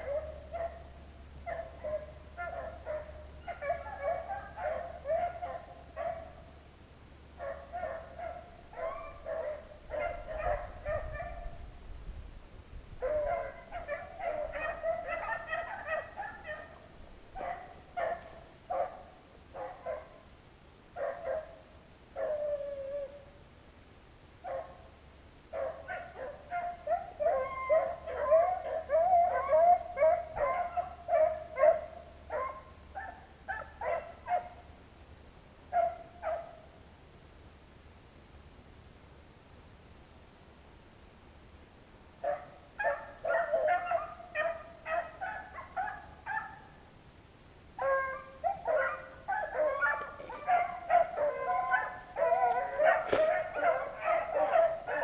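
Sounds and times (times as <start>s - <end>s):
dogs baying: 7.4s - 11.4s, 13.0s - 16.8s, 42.3s - 46.7s, 47.8s - 55.0s.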